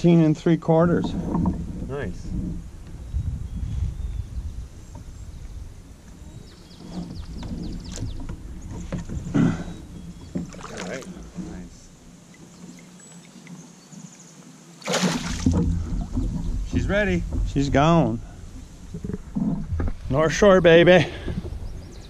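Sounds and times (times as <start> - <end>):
wind rumble on microphone: 0.0 - 11.9, 15.3 - 22.0
microphone handling: 0.9 - 11.9, 15.1 - 22.0
fish splashing into water: 14.8 - 16.2.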